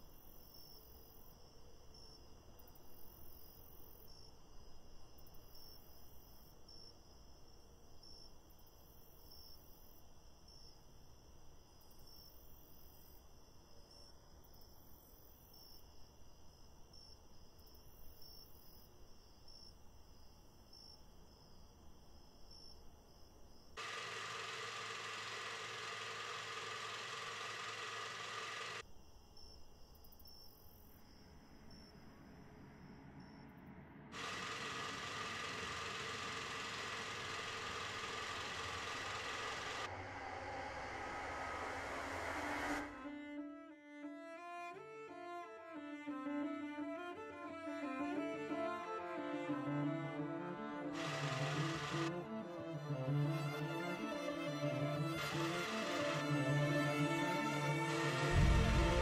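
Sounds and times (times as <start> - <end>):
insects chirping: 0.0 - 40.8
loud hiss-like noise: 23.8 - 28.8, 34.1 - 43.3, 48.4 - 59.0.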